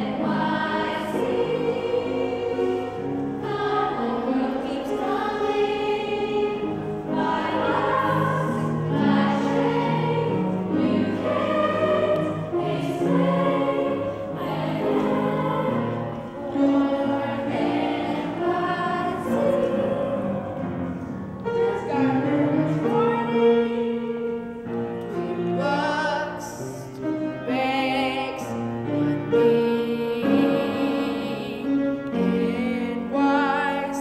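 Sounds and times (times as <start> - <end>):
children's choir singing: 0.0 - 34.0.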